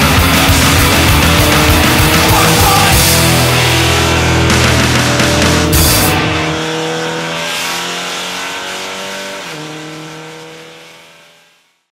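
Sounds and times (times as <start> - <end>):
race car engine from inside: 0.0 - 11.7.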